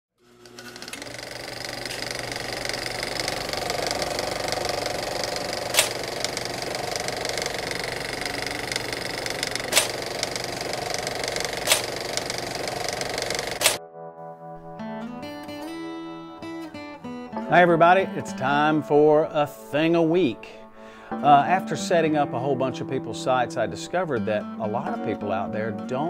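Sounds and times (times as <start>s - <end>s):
rapid mechanical clatter: 0.3s - 13.8s
loud sharp clicks: 3.9s - 6.7s, 8.2s - 13.8s.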